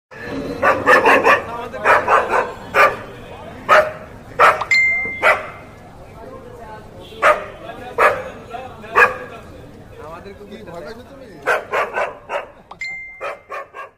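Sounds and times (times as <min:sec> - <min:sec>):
dogs barking: 0:00.3 - 0:05.7, 0:07.2 - 0:09.3, 0:11.4 - 0:13.9.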